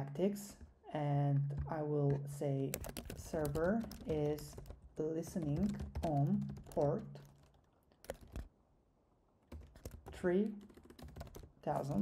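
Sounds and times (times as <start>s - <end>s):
keyboard typing: 2.6s - 8.5s, 9.5s - 12.0s.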